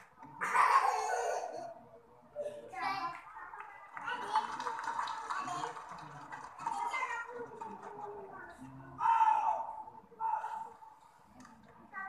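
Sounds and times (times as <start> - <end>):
raised voices calling out: 9.0 - 10.8.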